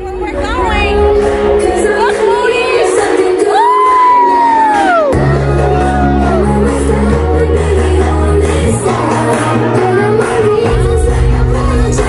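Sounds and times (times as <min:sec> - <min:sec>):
crowd noise: 0:00.0 - 0:12.0
music: 0:00.0 - 0:12.0.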